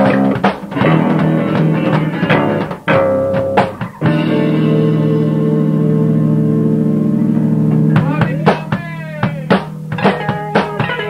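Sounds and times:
electric guitar chord ringing: 0:00.0 - 0:08.8, 0:09.8 - 0:11.0
sharp drum hits: 0:07.7 - 0:11.0.

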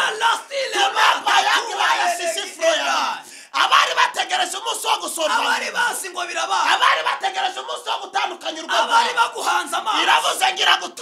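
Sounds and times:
men shouting excitedly: 0:00.0 - 0:11.0.

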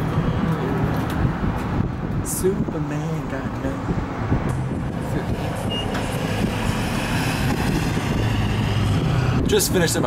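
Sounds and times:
vehicle driving past: 0:04.1 - 0:09.5.

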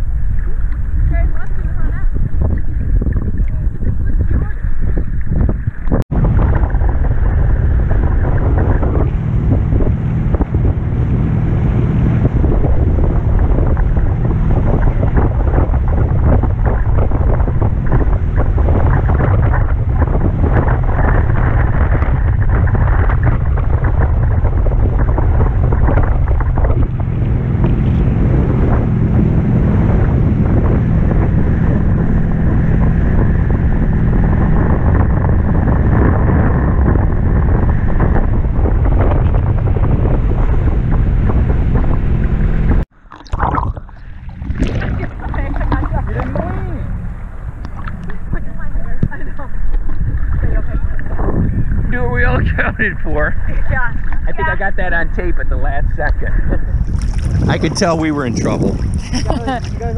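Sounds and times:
wind buffeting microphone: 0:00.0 - 0:59.9
rushing water and spray: 0:37.8 - 0:52.3, 0:56.8 - 0:59.9.

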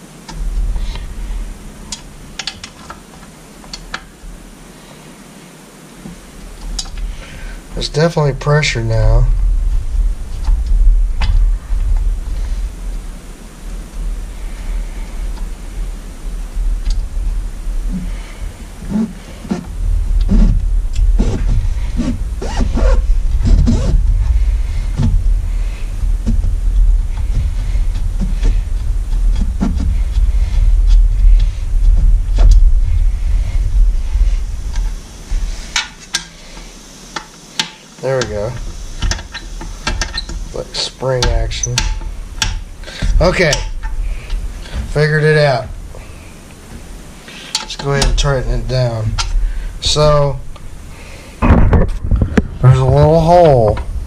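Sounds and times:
low rumble: 0:06.2 - 0:35.7, 0:48.0 - 0:54.0.

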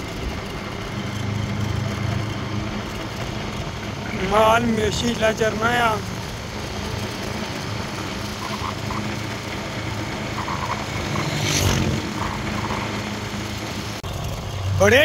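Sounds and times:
motorcycle engine humming: 0:00.0 - 0:15.0.

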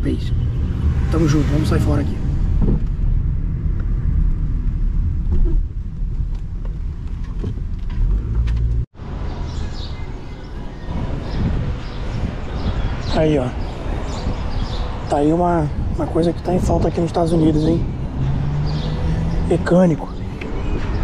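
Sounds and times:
car cabin road and engine noise: 0:00.0 - 0:21.0
outdoor street noise: 0:00.0 - 0:21.0.

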